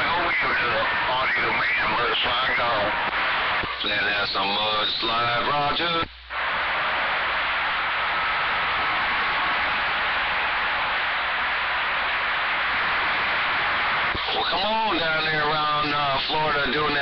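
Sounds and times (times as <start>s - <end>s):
man's voice over radio speaker: 0.0s - 6.1s, 14.1s - 17.0s
radio static hiss: 0.0s - 17.0s.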